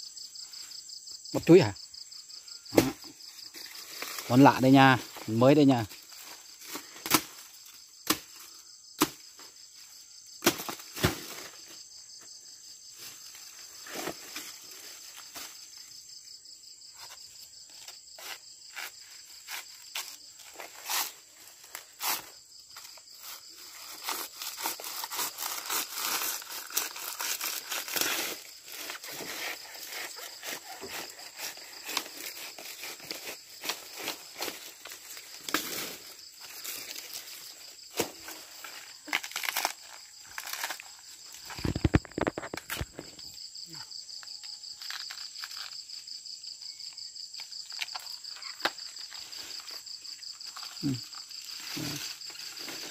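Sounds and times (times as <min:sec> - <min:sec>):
insects chirring: 0:00.0 - 0:52.9
leaves rustling and tearing: 0:17.8 - 0:43.1, 0:44.7 - 0:45.9, 0:47.4 - 0:52.9.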